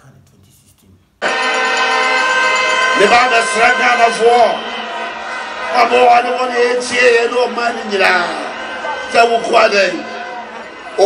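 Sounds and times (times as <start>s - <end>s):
loud horn blare: 1.2s - 11.0s.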